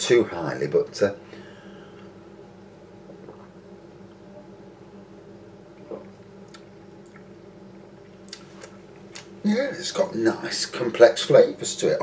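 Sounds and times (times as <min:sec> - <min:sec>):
steady low hum: 0:00.0 - 0:12.0
man swallowing: 0:03.1 - 0:03.6.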